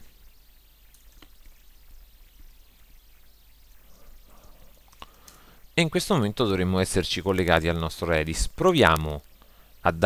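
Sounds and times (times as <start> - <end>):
microphone and room hiss: 0.0 - 10.0.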